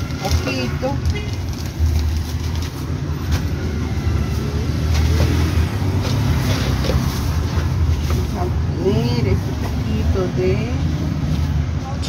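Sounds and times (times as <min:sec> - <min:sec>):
plastic bag rustling: 0:00.0 - 0:03.6, 0:04.3 - 0:08.6.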